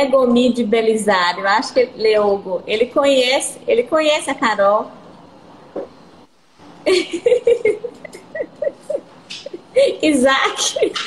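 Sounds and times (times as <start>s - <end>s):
woman laughing: 6.8s - 11.0s.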